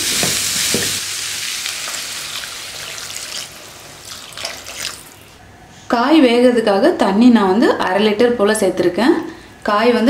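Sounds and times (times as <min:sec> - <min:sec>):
water pouring into a pan: 0:00.0 - 0:05.2
vegetables sizzling: 0:00.0 - 0:05.4
water splashing: 0:01.5 - 0:05.2.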